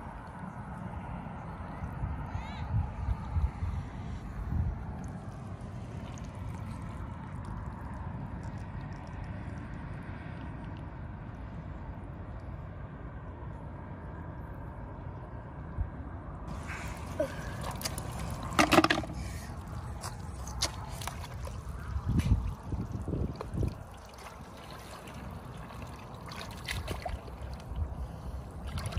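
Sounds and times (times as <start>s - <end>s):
faint continuous hum: 0.0s - 28.9s
outdoor background rumble: 0.0s - 28.9s.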